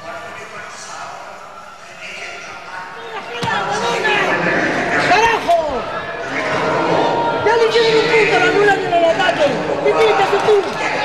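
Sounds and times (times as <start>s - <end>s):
excited shouting voices: 3.0s - 11.0s.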